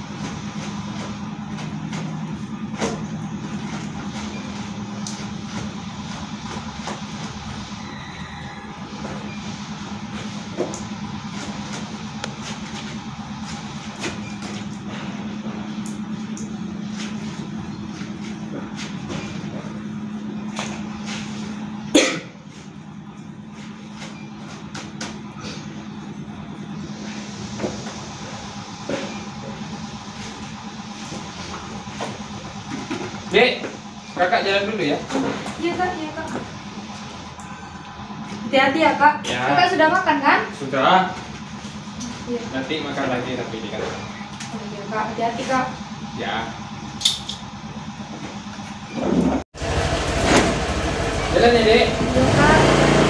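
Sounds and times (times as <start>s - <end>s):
outdoor background rumble: 0.0s - 53.0s
scooter engine idling: 0.0s - 53.0s.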